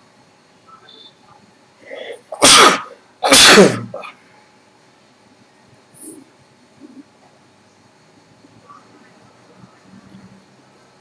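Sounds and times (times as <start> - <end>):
person sneezing: 1.8 - 4.2.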